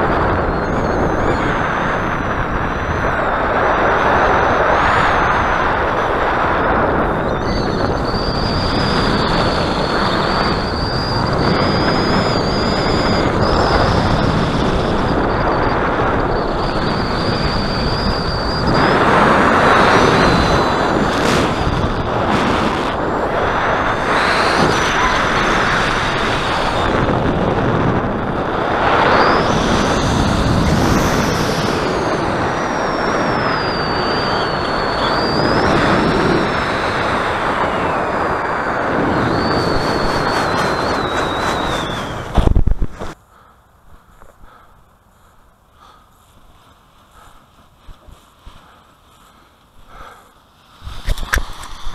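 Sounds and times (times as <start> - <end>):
wind roaring over microphone: 0.0 - 43.2, 45.8 - 51.9
thin high whistle: 7.0 - 21.9, 28.8 - 43.2.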